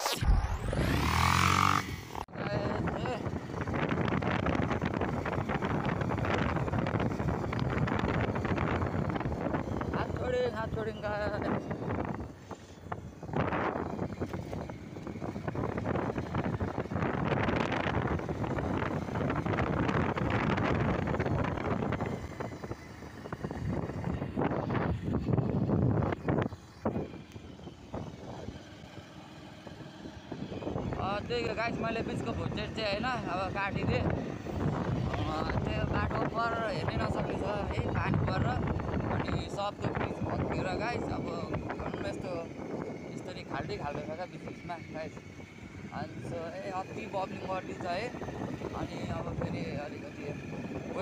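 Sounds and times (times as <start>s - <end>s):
motorcycle engine: 0.0s - 51.0s
road noise: 0.0s - 51.0s
wind buffeting microphone: 0.2s - 51.0s.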